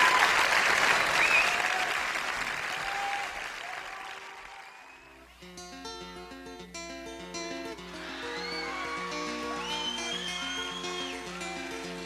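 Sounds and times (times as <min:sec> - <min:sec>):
plucked acoustic guitar pattern: 0:05.3 - 0:12.0.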